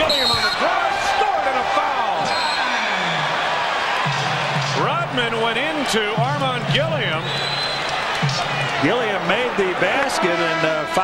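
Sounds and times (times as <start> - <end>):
arena crowd roaring: 0.0 - 11.0
man's voice: 4.6 - 7.2, 8.4 - 11.0.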